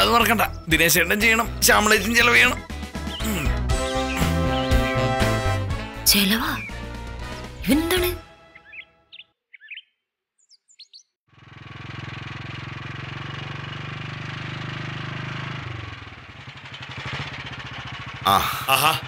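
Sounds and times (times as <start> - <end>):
bird chirps: 2.4 - 5.4, 8.5 - 11.2
motorcycle engine running: 11.3 - 19.0.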